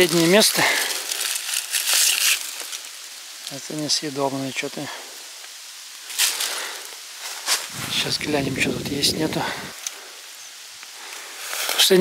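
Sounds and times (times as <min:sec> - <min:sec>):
faint hiss: 0:00.0 - 0:12.0
footstep in dry leaves: 0:00.0 - 0:12.0.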